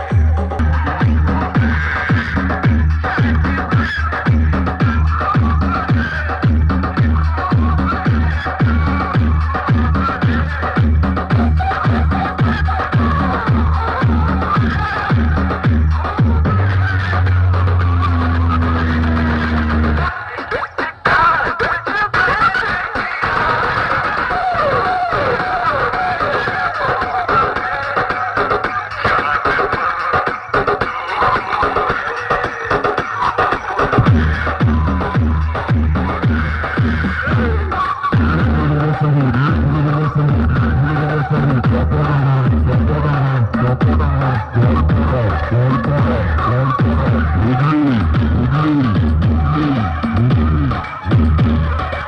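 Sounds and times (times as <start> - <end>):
loud music with sung vocals: 0.0 - 52.0.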